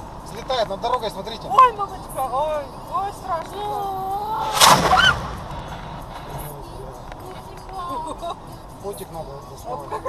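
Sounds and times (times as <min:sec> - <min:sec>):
road noise inside a car: 0:00.0 - 0:10.0.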